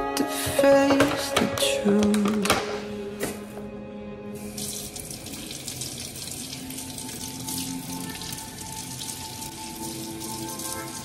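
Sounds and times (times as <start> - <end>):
faucet running into steel sink: 4.4 - 11.0.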